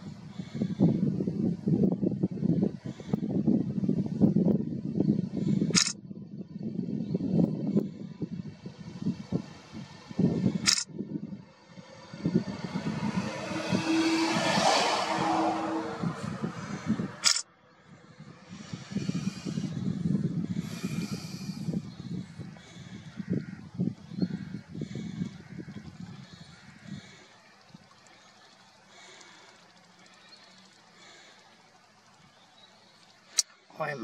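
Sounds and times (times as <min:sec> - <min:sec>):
wind buffeting microphone: 0:00.0 - 0:34.0
sharp clicks: 0:05.8 - 0:06.0, 0:10.6 - 0:10.9, 0:17.2 - 0:17.4
vehicle passing: 0:08.4 - 0:33.3.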